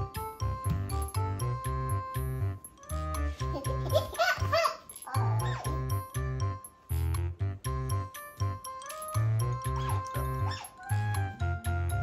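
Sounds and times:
background music with steady beat: 0.0 - 12.0
otter squeaky calls: 5.1 - 6.0, 9.6 - 11.1.

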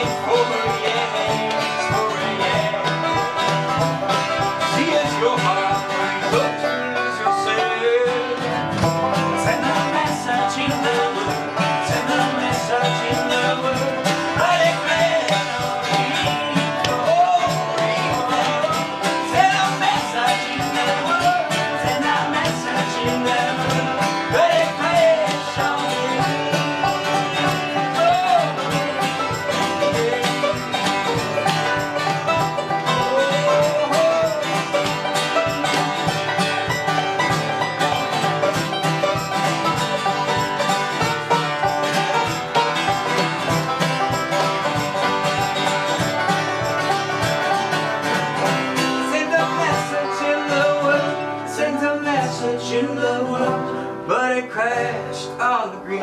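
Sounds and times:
acoustic guitar strumming: 0.0 - 56.0
banjo picking: 0.0 - 56.0.

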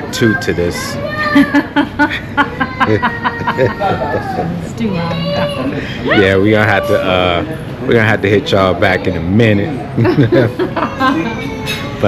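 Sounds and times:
man and woman laughing: 1.4 - 4.7, 10.0 - 11.4.

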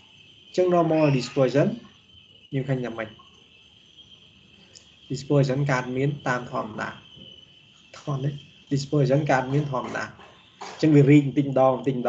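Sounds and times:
high-pitched background drone: 0.0 - 12.0
man speaking: 0.6 - 1.8, 2.6 - 3.2, 5.1 - 7.0, 8.0 - 10.1, 10.8 - 12.0.

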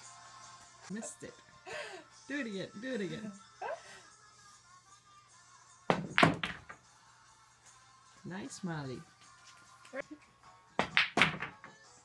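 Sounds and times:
billiard balls clacking: 5.9 - 6.8, 10.8 - 11.8
pool cue striking ball: 5.9 - 6.8, 10.8 - 11.7.

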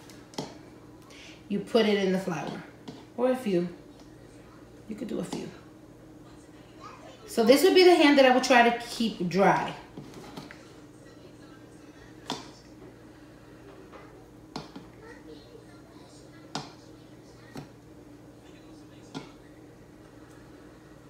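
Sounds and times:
faint steady hum: 0.0 - 21.0.

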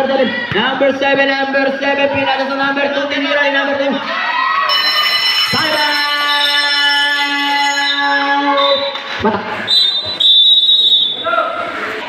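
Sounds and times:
man calling over public address: 5.4 - 9.6.

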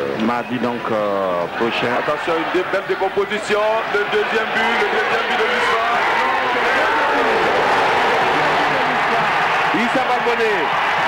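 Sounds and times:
stadium crowd cheering: 0.0 - 11.0
commentator talking: 0.2 - 6.6, 9.7 - 10.7.

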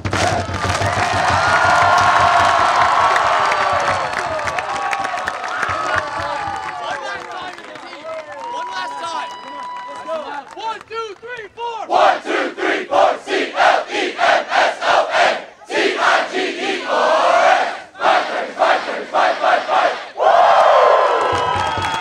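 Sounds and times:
crowd cheering: 0.0 - 22.0
crowd shouting a rhythmic chant: 11.8 - 21.8.

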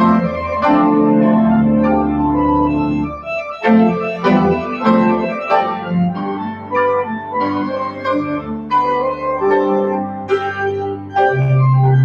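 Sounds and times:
church organ chords: 0.0 - 12.0.

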